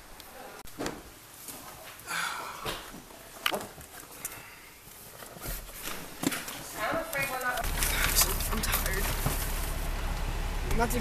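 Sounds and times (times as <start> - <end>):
low car cabin rumble: 7.6 - 11.0.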